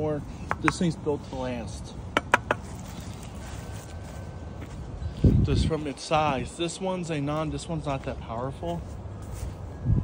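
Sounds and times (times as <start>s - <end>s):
sharp taps: 0.5s - 0.8s, 2.1s - 2.6s.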